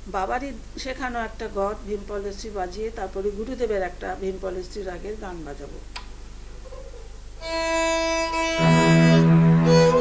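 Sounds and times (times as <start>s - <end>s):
held musical note: 7.4s - 10.0s.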